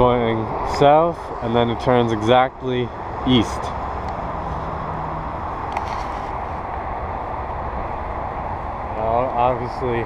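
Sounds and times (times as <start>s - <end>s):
distant road traffic hum: 0.0s - 10.0s.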